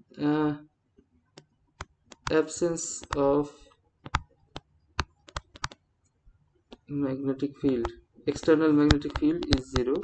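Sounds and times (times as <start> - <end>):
stylus clicking on writing tablet: 1.3 - 3.4, 4.0 - 5.9, 7.6 - 10.0.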